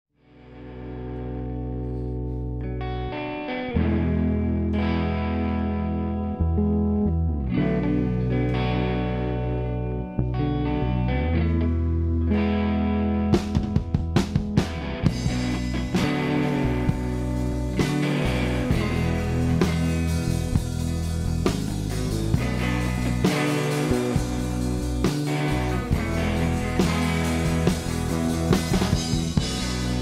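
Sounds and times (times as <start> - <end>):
electric guitar chords: 0.2 - 30.0
drum hits: 17.8 - 30.0.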